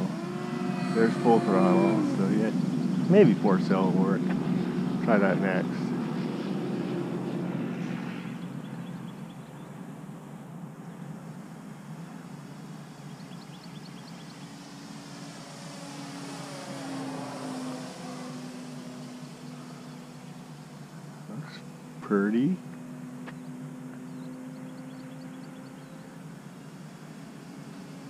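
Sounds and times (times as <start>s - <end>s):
model airplane motor and propeller hum: 0.0s - 28.0s.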